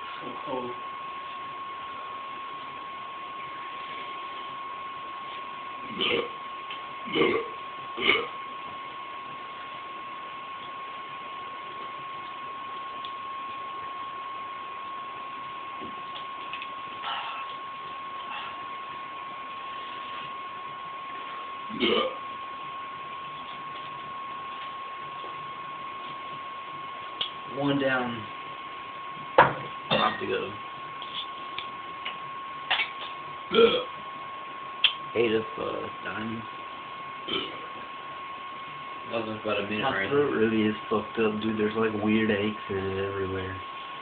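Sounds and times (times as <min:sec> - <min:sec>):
high-pitched whine: 0:00.0 - 0:44.0
room hiss: 0:00.0 - 0:44.0
man burping loudly: 0:05.9 - 0:06.4, 0:07.1 - 0:08.3, 0:21.7 - 0:22.2, 0:33.5 - 0:33.9, 0:37.3 - 0:37.6.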